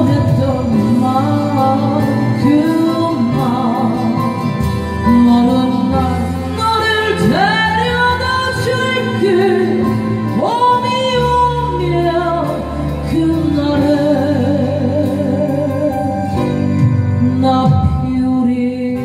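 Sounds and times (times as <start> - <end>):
backing track music: 0.0 - 19.0
woman singing a ballad: 0.0 - 19.0.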